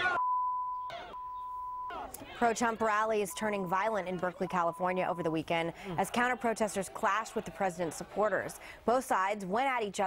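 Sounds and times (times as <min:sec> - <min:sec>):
shouting voices: 0:00.0 - 0:00.2, 0:00.9 - 0:01.3, 0:01.9 - 0:08.6
censor beep tone: 0:00.0 - 0:02.1, 0:03.2 - 0:05.5
crowd audio: 0:00.8 - 0:10.0.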